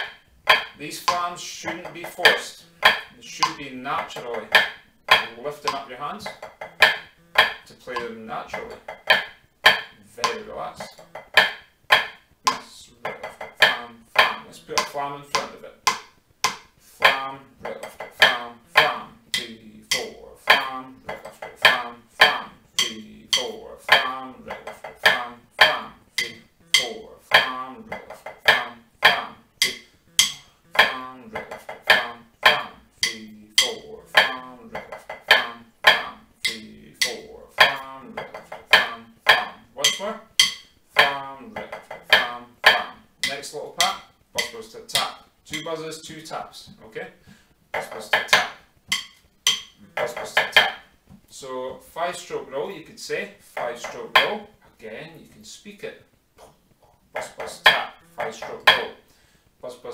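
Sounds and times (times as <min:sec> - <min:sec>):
drumsticks tapping practice pad: 0:00.0 - 0:59.5.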